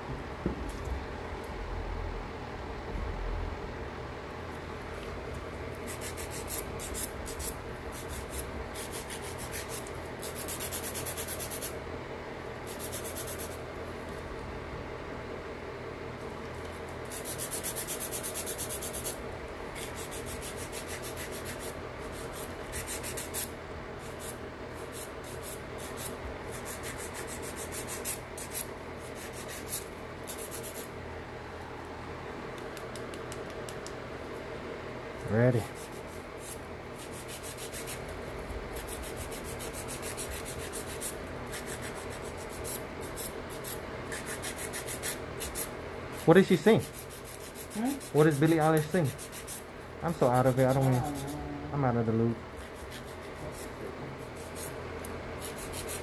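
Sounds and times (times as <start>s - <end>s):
nail file rasping on fingernail: 5.7s - 11.8s, 12.6s - 13.6s, 17.0s - 30.9s, 35.6s - 38.1s, 38.7s - 51.4s, 52.6s - 56.0s.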